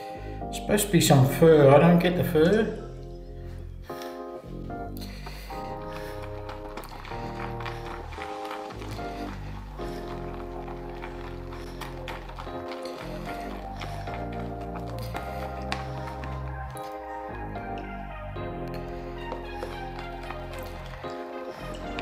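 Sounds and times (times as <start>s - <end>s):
background music of held chords: 0.0s - 22.0s.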